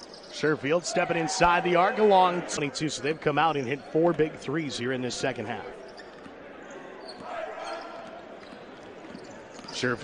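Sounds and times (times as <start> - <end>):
arena crowd murmur: 0.6 - 10.0.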